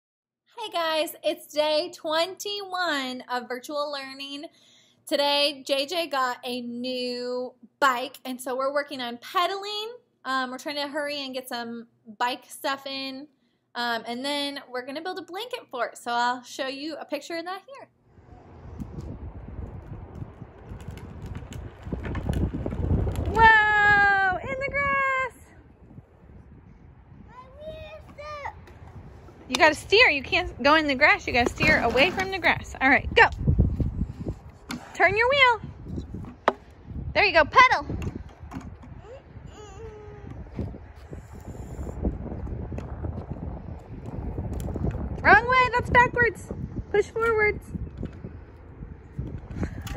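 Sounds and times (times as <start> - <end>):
low rumbling noise: 18.0 - 49.9
plastic wheels rumbling on concrete: 18.7 - 24.0, 28.0 - 32.8
young child whining: 39.0 - 40.7.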